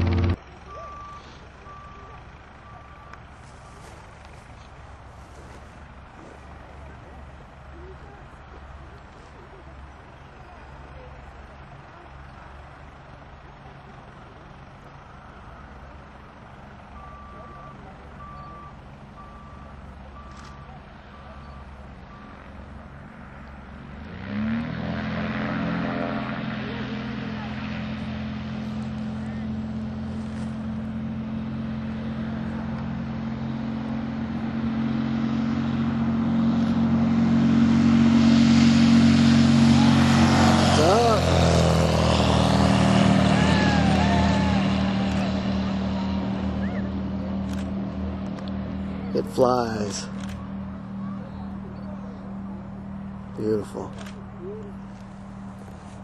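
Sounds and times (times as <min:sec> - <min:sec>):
light aircraft engine drone: 0:00.0 - 0:56.0.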